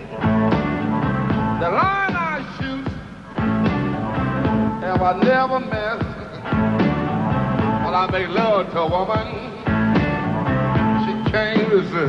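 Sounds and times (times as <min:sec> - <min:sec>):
electric blues band playing live: 0:00.0 - 0:12.0.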